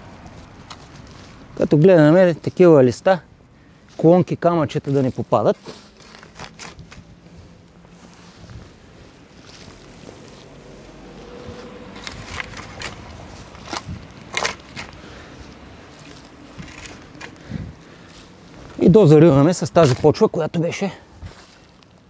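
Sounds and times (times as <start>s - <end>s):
shovel scraping soil: 4.8s - 8.6s, 9.5s - 15.2s, 15.9s - 17.4s, 19.8s - 20.2s.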